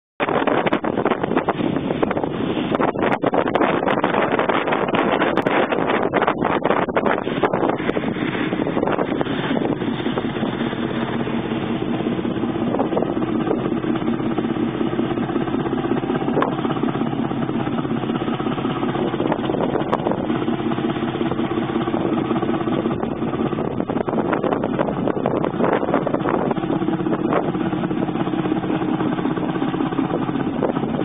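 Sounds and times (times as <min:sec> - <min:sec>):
ship diesel engine running: 0:00.2 - 0:31.0
water rushing along hull: 0:00.2 - 0:31.0.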